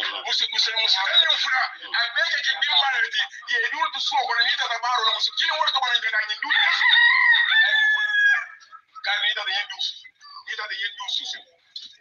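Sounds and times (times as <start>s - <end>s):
speech: 0.0s - 7.8s, 9.0s - 12.0s.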